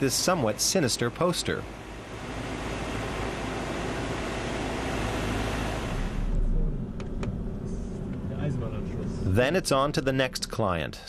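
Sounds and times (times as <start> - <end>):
car road noise: 0.0 - 10.6.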